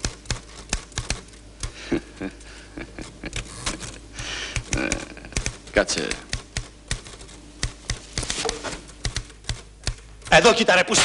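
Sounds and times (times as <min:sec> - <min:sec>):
typewriter keys clacking: 0:00.0 - 0:01.8, 0:04.6 - 0:10.4.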